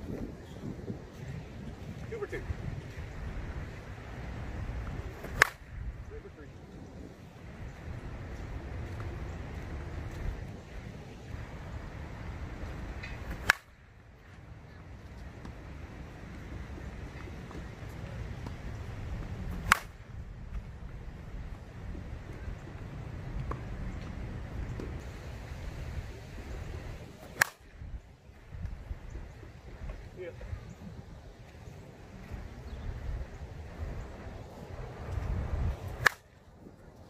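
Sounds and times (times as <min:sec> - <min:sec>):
bat cracking against softball: 0:04.8 - 0:05.8, 0:12.2 - 0:14.0, 0:19.5 - 0:20.1, 0:27.0 - 0:27.8, 0:35.7 - 0:36.4.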